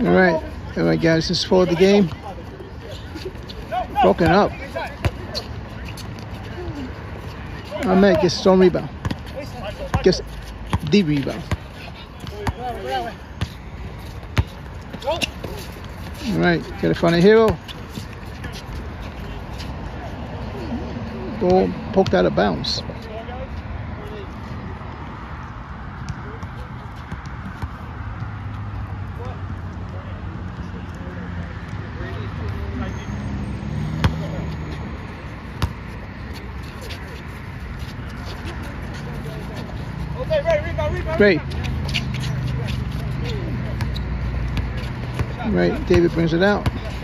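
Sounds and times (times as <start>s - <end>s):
men talking: 0.0s - 13.9s, 14.8s - 24.8s, 29.1s - 33.5s, 36.3s - 44.4s, 45.0s - 47.0s.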